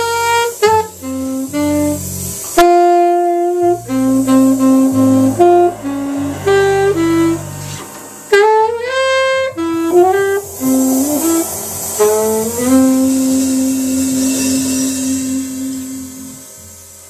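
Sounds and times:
alto saxophone: 0.0 - 17.0
double bass: 0.0 - 17.0
ringing cymbal: 0.0 - 17.0.

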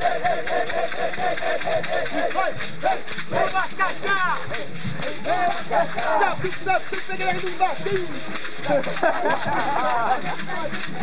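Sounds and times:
basket rattles shaken: 0.0 - 11.0
group of voices calling out: 0.0 - 11.0.

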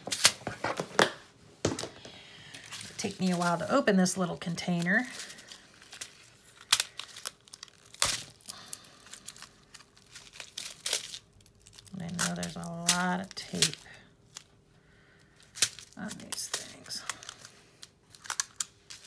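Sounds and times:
plastic tape peeling and crinkling: 2.6 - 14.6, 15.4 - 19.0.

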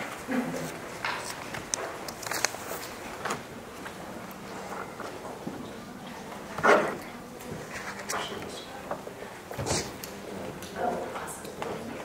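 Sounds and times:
faint voices: 2.9 - 12.0.

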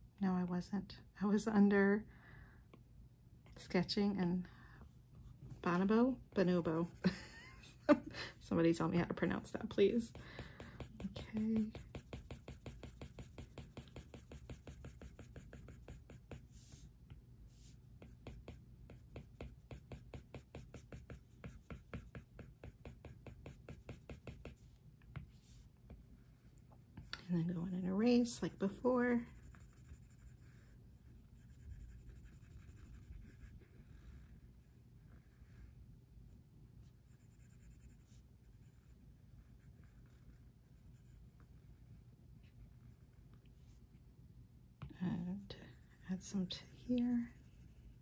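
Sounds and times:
low room hum: 0.0 - 48.0
stylus scratching on glass screen: 9.2 - 16.8.

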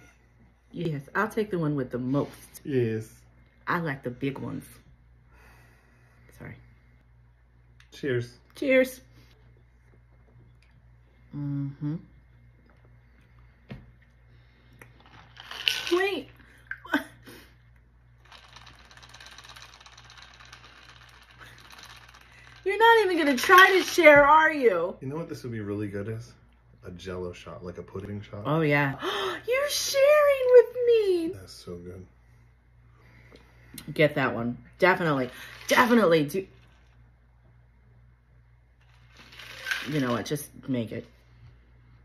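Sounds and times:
ice rattling in metal shaker: 18.2 - 24.2, 38.9 - 40.4.

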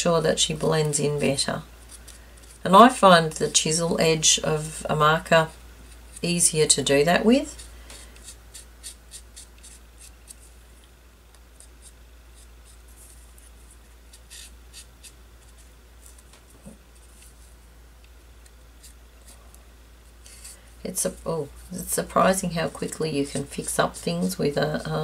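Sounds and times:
marker rubbing on paper: 7.4 - 10.5, 11.6 - 16.3.

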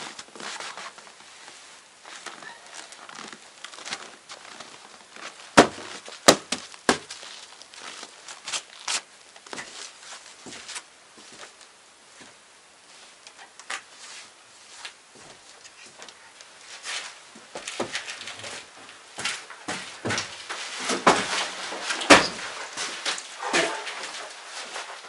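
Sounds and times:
clothing and backpack rustling: 0.0 - 25.0.

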